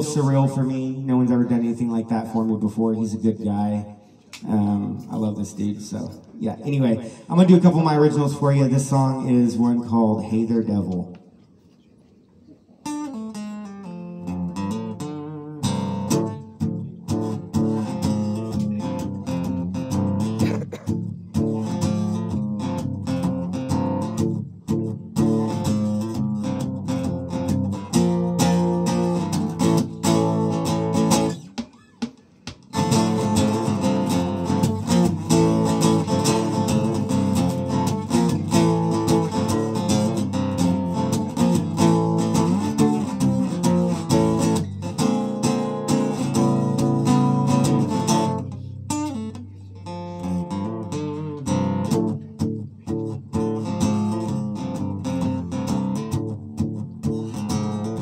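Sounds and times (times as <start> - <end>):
acoustic guitar chords: 12.8 - 58.0.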